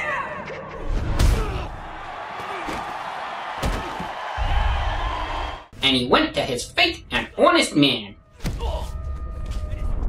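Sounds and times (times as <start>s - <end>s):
crowd shouting and cheering: 0.0s - 5.7s.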